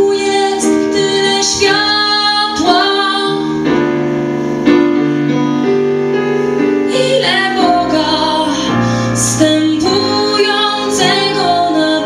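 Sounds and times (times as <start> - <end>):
piano chords: 0.0 - 12.0
woman singing slow song: 6.9 - 12.0.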